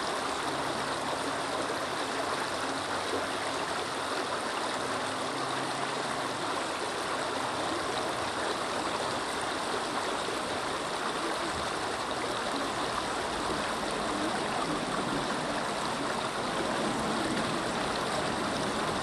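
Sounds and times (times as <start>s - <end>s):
creek water flowing: 0.0s - 19.0s.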